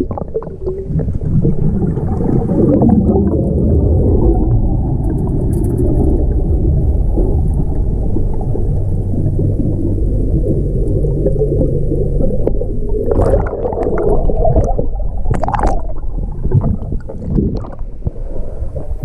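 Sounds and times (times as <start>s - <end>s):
muffled underwater churning rumble: 0.0s - 19.0s.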